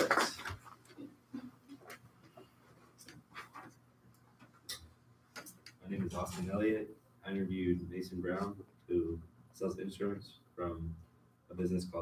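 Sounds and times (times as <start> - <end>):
man speaking: 5.8 - 12.0.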